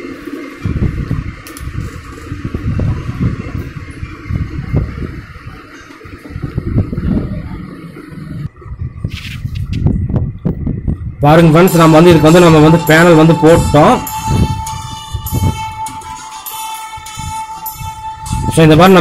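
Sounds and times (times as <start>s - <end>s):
low rumbling: 0.0s - 19.0s.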